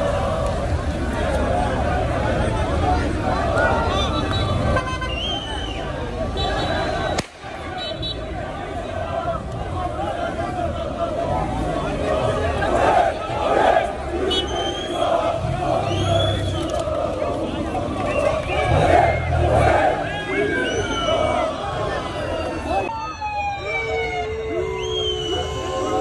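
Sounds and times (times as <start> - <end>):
crowd chanting and shouting: 0.0 - 26.0.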